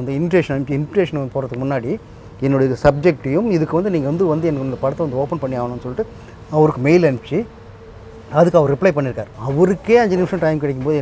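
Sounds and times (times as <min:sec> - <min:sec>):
man speaking: 0:00.0 - 0:07.6, 0:08.3 - 0:11.0
faint steady hum: 0:00.0 - 0:11.0.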